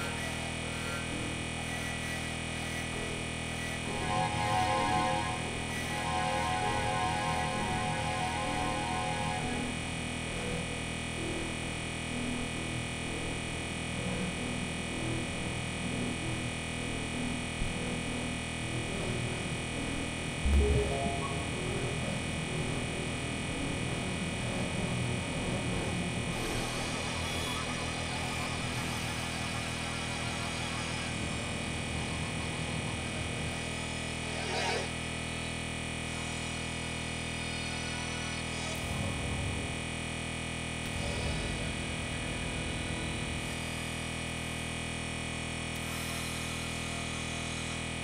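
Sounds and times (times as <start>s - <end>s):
synthesizer drone: 0.0s - 11.7s, 17.0s - 37.6s, 38.8s - 47.0s
soft low pulses: 2.8s - 10.2s, 20.4s - 24.6s.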